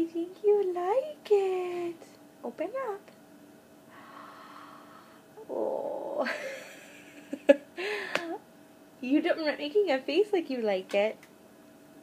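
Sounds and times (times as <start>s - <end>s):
infant throaty growl: 5.4s - 6.3s.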